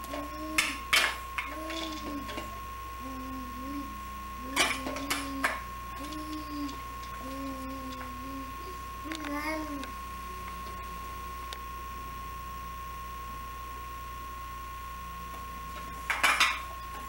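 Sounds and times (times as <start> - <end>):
baby babbling: 0.1 - 0.8, 1.5 - 9.9
thin high tone: 1.4 - 11.0.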